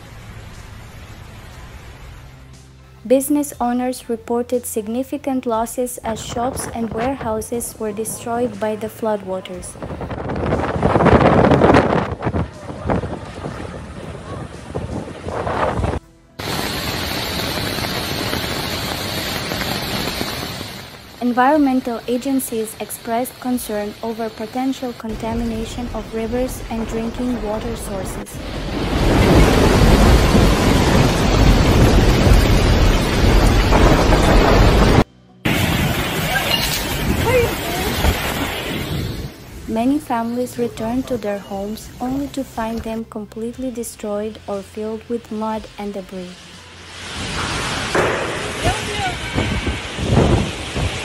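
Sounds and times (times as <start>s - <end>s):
heavy rain and rushing floodwater: 0.0s - 3.0s, 8.4s - 42.6s, 46.4s - 51.0s
wind buffeting microphone: 9.4s - 21.0s, 47.7s - 51.0s
deep rumble: 9.6s - 21.2s, 25.1s - 36.3s
faint voices: 12.2s - 15.1s.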